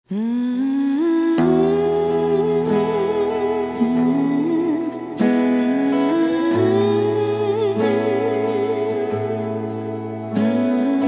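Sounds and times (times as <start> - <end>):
hummed melody: 0.1 - 11.0.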